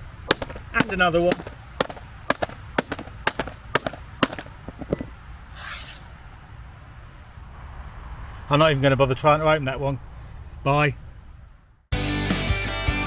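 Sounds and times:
hammer striking plastic laptop: 0.3 - 4.5.

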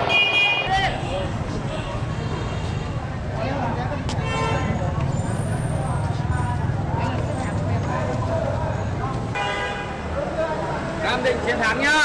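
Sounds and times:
crowd chatter: 0.0 - 12.0
street noise: 0.0 - 12.0.

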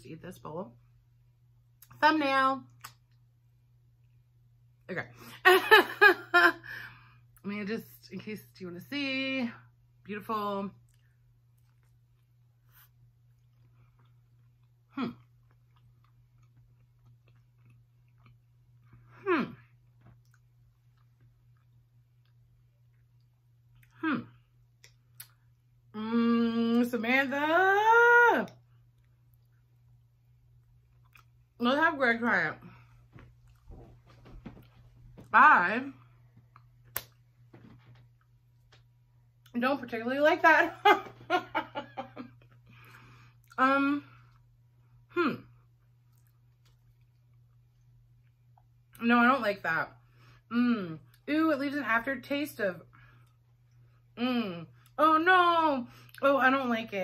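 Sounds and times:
low steady hum: 0.0 - 57.0
person chewing food: 10.8 - 25.7, 28.7 - 31.6, 36.0 - 39.5, 45.7 - 49.0.

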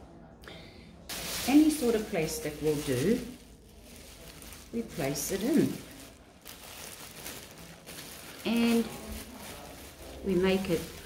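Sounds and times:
plastic bag rustling and crinkling: 1.1 - 11.0.

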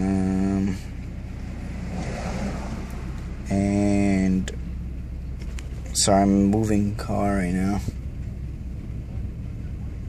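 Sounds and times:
car cabin low rumble: 0.0 - 10.0.

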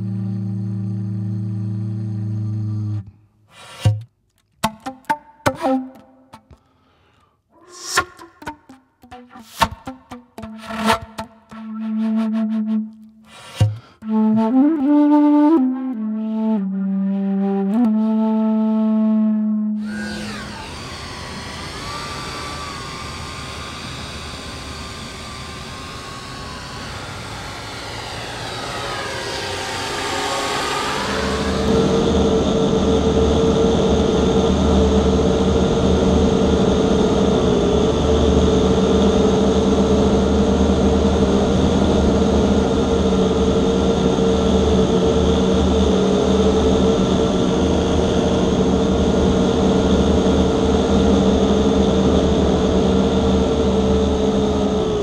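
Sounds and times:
electronic drone: 0.0 - 3.9, 7.6 - 14.6, 19.8 - 55.0.

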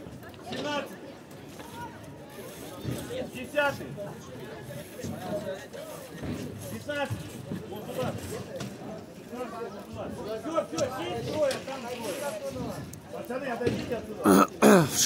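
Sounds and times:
low chatter of people: 0.0 - 15.0.

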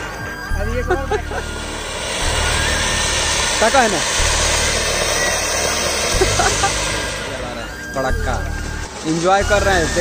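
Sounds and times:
firework fountain hissing: 0.6 - 10.0.

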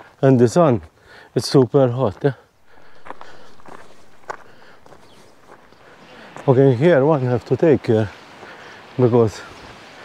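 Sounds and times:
footsteps on gravel: 2.6 - 6.5.

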